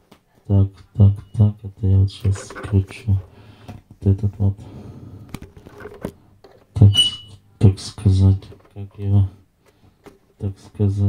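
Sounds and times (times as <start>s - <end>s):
person speaking: 0.3s - 5.0s, 6.6s - 9.4s, 10.4s - 11.0s.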